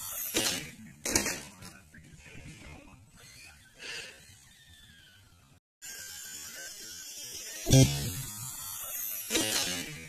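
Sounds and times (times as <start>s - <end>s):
toy car motor buzzing: 0.0s - 1.4s, 3.2s - 10.0s
toy car clattering as it tumbles: 0.0s - 1.9s, 6.0s - 10.0s.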